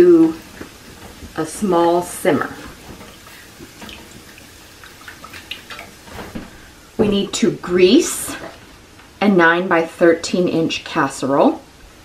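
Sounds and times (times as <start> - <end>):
whisk stirring in a saucepan: 0.1 - 6.1.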